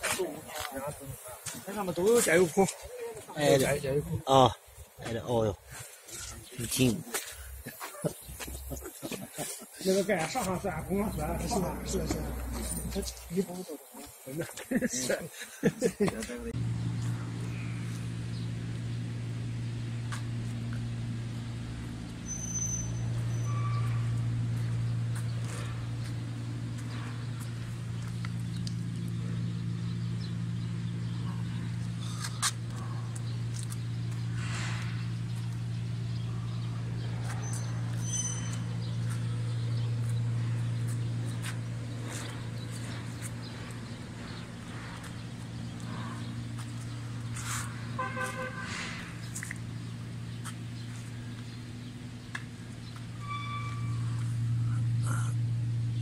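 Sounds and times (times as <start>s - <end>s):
diesel engine drone: 0.0s - 14.1s, 15.0s - 56.0s.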